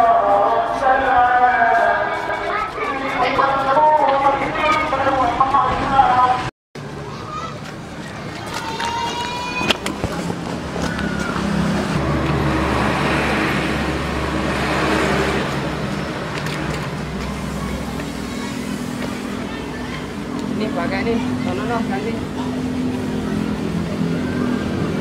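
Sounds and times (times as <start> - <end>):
motor vehicle passing: 0.0 - 25.0.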